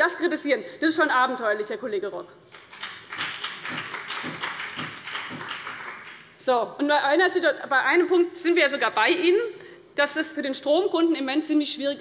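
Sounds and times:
scattered applause: 2.5s - 6.3s.

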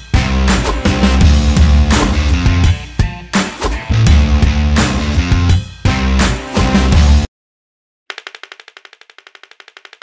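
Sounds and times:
dominoes toppling clicks: 8.1s - 10.0s.

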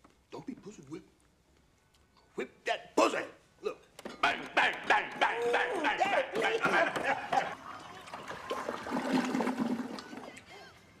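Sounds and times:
toilet flushing: 6.4s - 10.3s.

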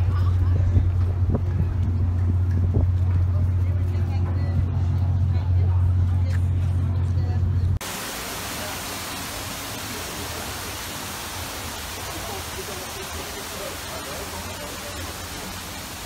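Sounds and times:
steady hiss: 7.8s - 16.0s
faint voices: 11.6s - 16.0s.

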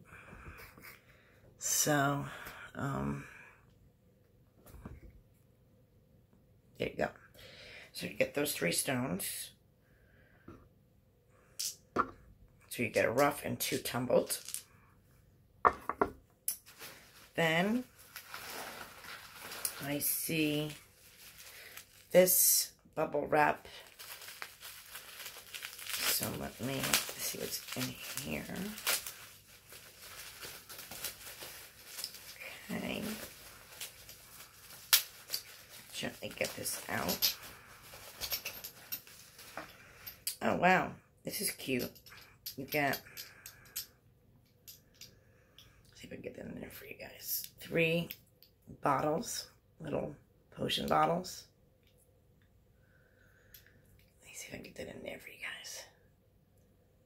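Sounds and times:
bubble wrap crinkling: 16.6s - 22.7s, 23.3s - 40.0s.

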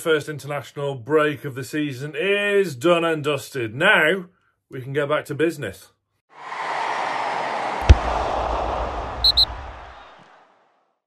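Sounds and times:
quick high bleeps: 9.2s - 9.5s.

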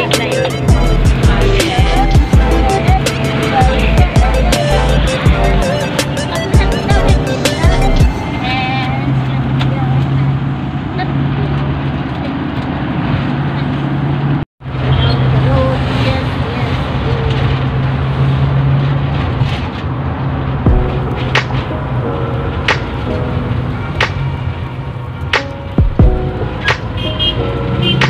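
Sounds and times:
music: 0.0s - 9.4s, 20.7s - 28.0s
road noise: 0.0s - 28.0s
van engine hum: 0.0s - 28.0s.

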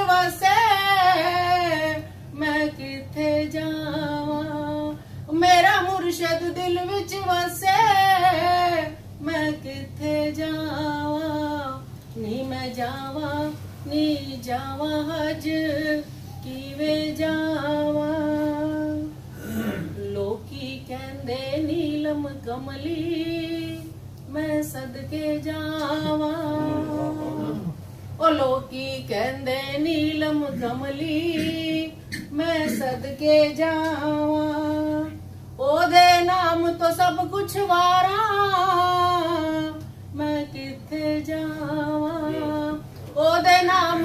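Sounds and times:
woman singing unaccompanied: 0.0s - 44.0s.

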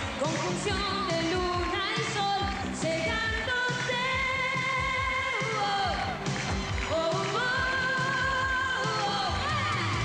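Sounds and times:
pop backing track: 0.0s - 10.0s
woman singing into a microphone: 0.2s - 6.2s, 6.9s - 10.0s.

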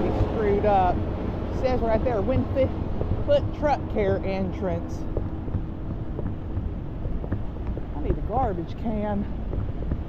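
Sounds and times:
faint hum: 0.0s - 10.0s
vehicle cabin road rumble: 0.0s - 10.0s.

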